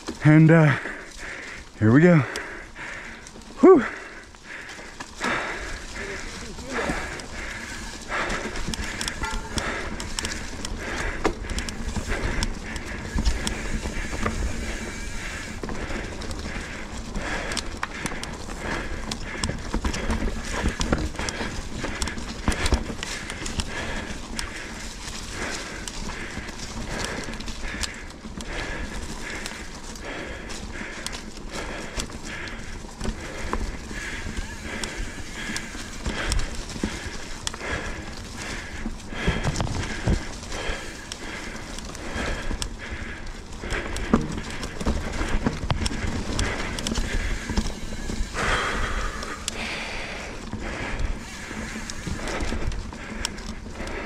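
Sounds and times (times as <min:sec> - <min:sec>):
mountain bike rattling and clacking: 0:00.0 - 0:54.0
tyres rolling through leaves: 0:00.0 - 0:54.0.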